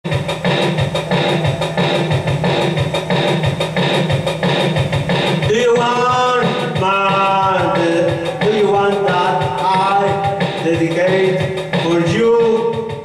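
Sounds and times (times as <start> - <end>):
rock music: 0.0 - 13.0
person singing: 5.4 - 13.0.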